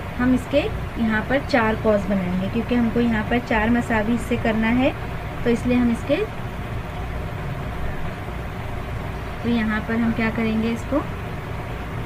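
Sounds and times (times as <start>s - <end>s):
low rumbling hum: 0.0s - 12.0s.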